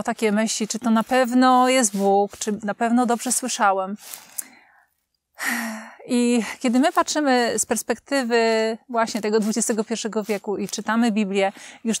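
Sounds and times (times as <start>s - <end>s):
woman speaking: 0.0s - 4.0s, 6.0s - 12.0s.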